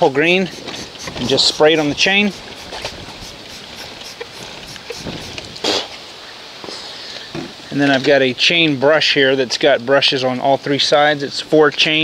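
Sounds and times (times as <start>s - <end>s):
steady background hiss: 0.0s - 12.0s
spray bottle squirting: 0.3s - 6.0s.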